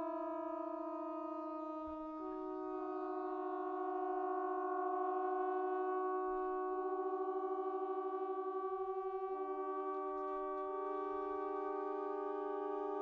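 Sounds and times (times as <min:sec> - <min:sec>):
trombones sustained chords: 0:00.0 - 0:13.0.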